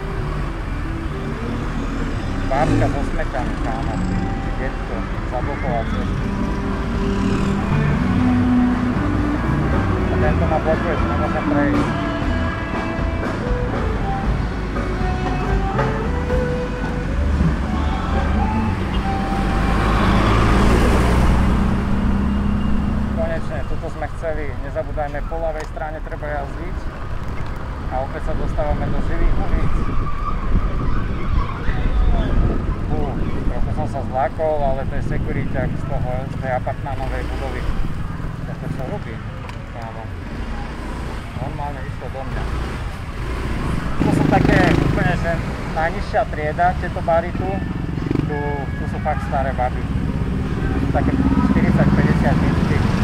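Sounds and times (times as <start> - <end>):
music playing: 0.0 - 24.6
wind rumble on microphone: 28.3 - 36.1.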